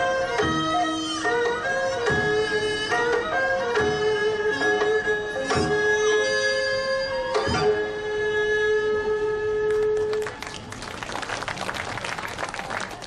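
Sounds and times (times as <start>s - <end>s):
audience applause: 10.0s - 13.0s.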